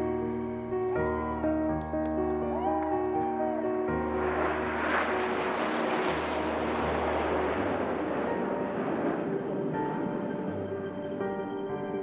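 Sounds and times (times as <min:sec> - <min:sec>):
jet roar overhead: 0:00.9 - 0:12.0.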